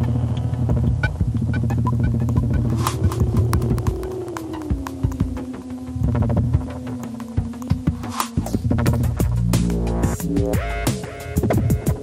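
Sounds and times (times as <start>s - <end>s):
high electronic blips: 0.0s - 5.5s
low bass drone: 0.0s - 12.0s.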